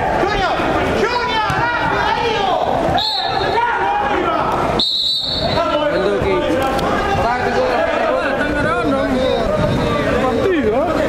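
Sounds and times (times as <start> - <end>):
players' voices: 0.0 - 11.0
referee's whistle blasts: 2.9 - 3.6, 4.8 - 5.8.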